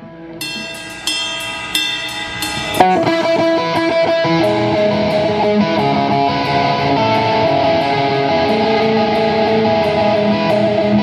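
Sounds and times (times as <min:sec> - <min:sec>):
electric guitar notes ringing: 0:00.4 - 0:11.0.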